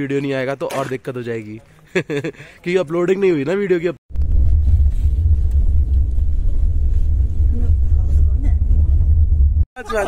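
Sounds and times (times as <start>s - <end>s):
car cabin rumble: 4.2s - 9.6s.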